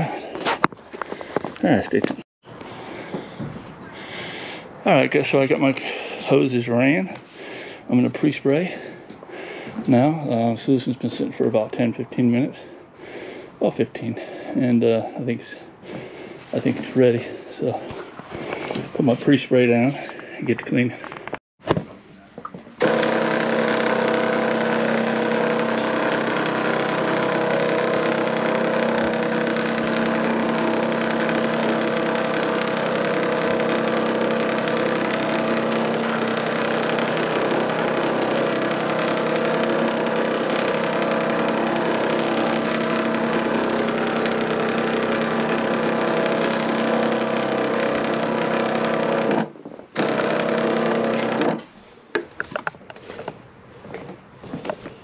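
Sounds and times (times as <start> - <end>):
pump sprayer motor running: 22.8 - 51.6.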